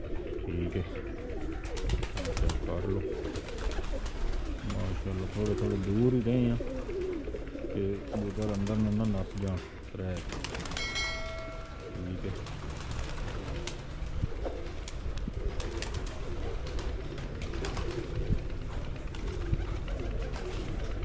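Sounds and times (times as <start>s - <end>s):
pigeons cooing: 0.0s - 21.0s.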